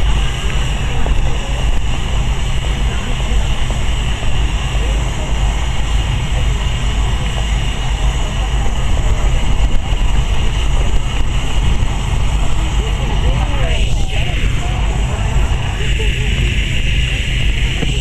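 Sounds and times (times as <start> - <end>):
murmur of distant voices: 0.0 - 18.0
steady low rumble: 0.0 - 18.0.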